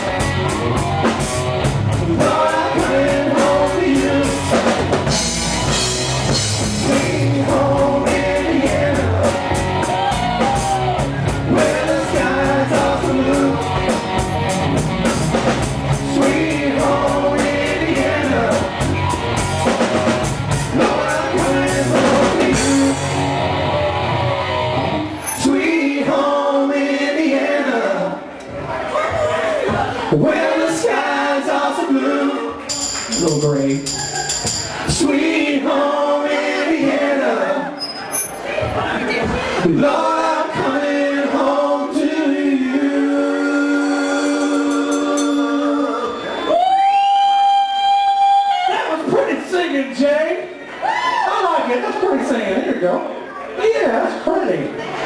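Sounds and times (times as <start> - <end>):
live rock band playing: 0.0 - 25.6, 32.6 - 35.0.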